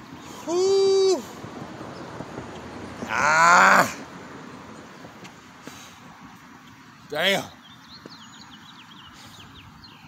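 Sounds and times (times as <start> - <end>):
man groaning: 3.1 - 4.0.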